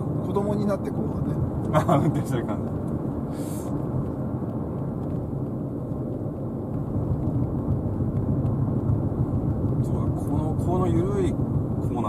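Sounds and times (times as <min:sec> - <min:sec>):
car cabin road and engine noise: 0:00.0 - 0:12.0.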